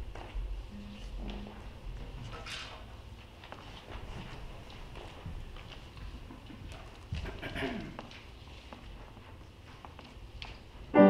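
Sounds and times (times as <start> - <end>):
people shuffling: 0.0 - 11.0.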